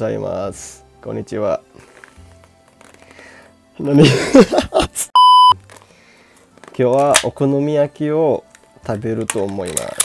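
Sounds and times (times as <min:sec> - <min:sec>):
man laughing: 0:03.9 - 0:05.1
censor bleep tone: 0:05.2 - 0:05.6.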